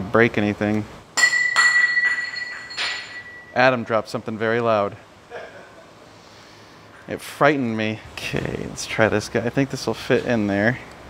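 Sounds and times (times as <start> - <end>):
high metallic ringing: 1.2 - 4.1.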